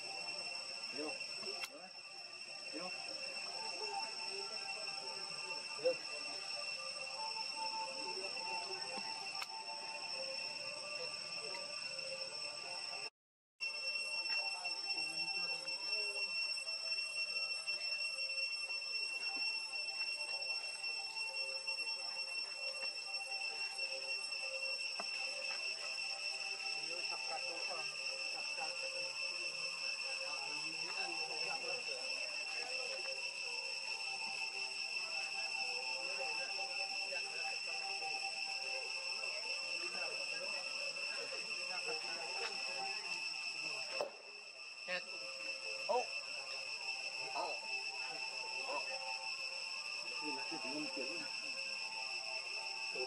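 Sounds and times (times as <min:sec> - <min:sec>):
faint voices murmuring: 0:00.0 - 0:13.0, 0:14.1 - 0:53.0
high-pitched insect drone: 0:00.0 - 0:53.0.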